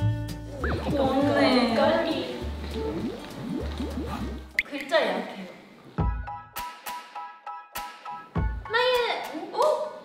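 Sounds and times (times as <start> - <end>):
background music with low bass: 0.0 - 4.6, 6.0 - 8.7
rising droplet-like blips: 0.6 - 4.8.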